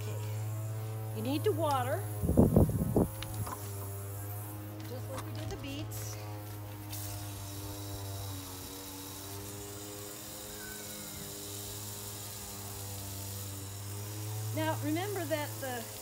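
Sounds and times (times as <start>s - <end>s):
hose spray nozzle hissing: 0.0s - 16.0s
low hum with held tones: 0.0s - 16.0s.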